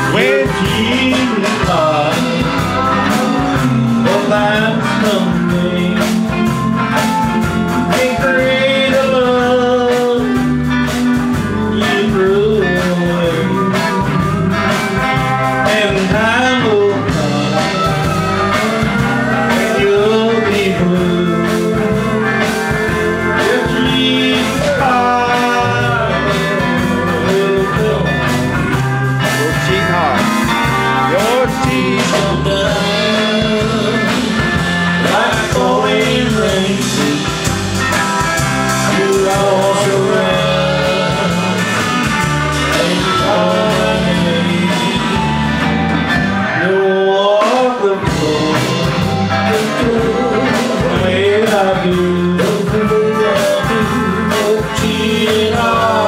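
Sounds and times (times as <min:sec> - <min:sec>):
live country band playing: 0:00.0 - 0:56.0.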